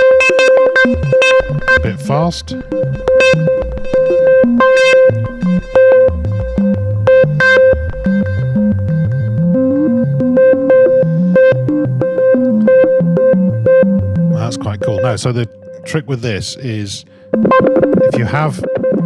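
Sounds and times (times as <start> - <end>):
synthesizer note with stepping filter: 0.0 - 16.0, 17.1 - 19.0.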